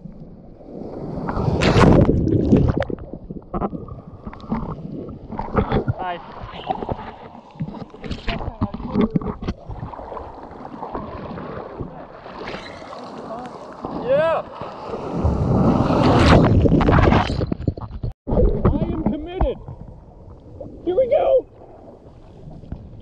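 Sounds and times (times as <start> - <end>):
water sloshing and splashing: 0.0 - 23.0
wave breaking with whitewater rush: 9.8 - 17.1.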